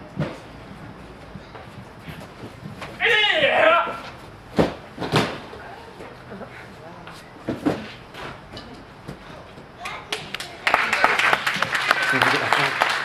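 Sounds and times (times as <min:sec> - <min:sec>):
bodies thumping on gym mats: 0:00.1 - 0:00.6, 0:01.4 - 0:06.2, 0:07.4 - 0:08.4
person yelling: 0:03.0 - 0:04.0.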